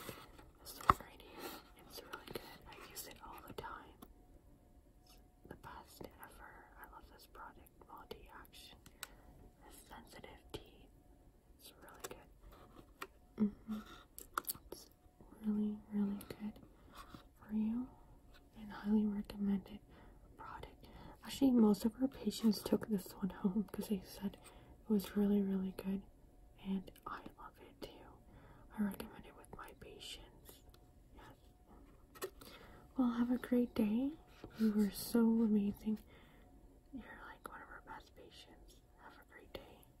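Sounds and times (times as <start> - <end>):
woman whispering: 0.6 - 4.1, 5.0 - 8.8, 9.6 - 11.0, 11.6 - 12.4, 13.4 - 16.7, 17.3 - 31.5, 32.9 - 36.1, 36.8 - 40.0.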